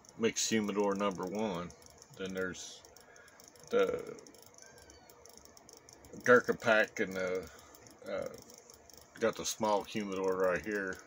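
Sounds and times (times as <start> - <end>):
faint ticking: 0.0 - 11.0.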